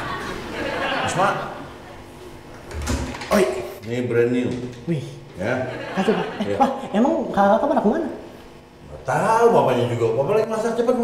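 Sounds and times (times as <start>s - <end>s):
door opening: 2.5s - 3.5s.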